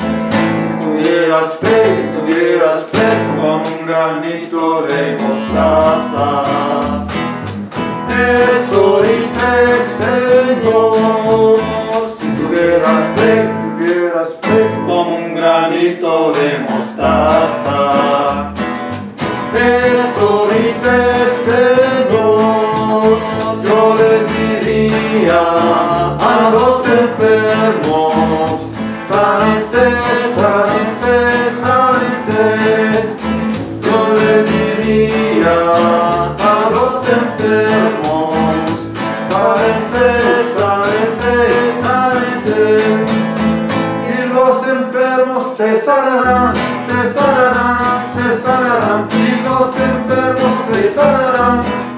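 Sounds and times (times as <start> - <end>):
plucked double bass: 0.0 - 3.8, 5.1 - 15.0, 16.6 - 44.1, 46.2 - 51.9
acoustic guitar strummed and picked: 0.0 - 51.9.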